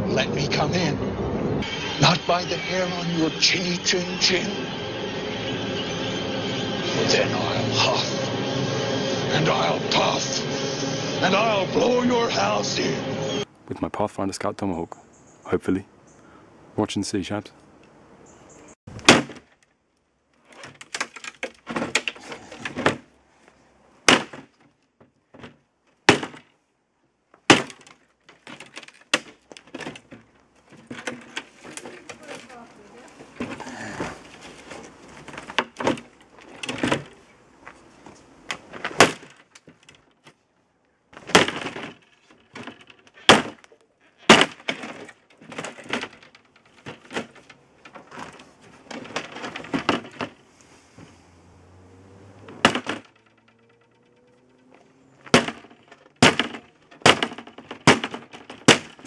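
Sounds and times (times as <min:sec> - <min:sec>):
tomahawk chopping wood: 0:18.9 - 0:19.6, 0:24.0 - 0:24.6, 0:25.4 - 0:26.5, 0:27.5 - 0:30.1, 0:38.6 - 0:39.7, 0:41.2 - 0:41.9, 0:42.6 - 0:45.1, 0:52.5 - 0:53.1, 0:55.2 - 0:59.0
wood cracking and splintering: 0:18.9 - 0:19.8, 0:20.4 - 0:23.2, 0:24.0 - 0:26.5, 0:27.4 - 0:37.2, 0:38.5 - 0:40.3, 0:41.2 - 0:50.4, 0:52.6 - 0:54.6, 0:55.2 - 0:59.0.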